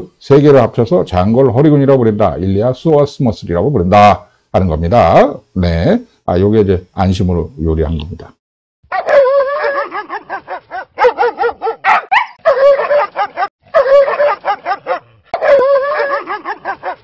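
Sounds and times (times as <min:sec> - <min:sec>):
dog-like yips and whines: 0:08.9 - 0:17.0.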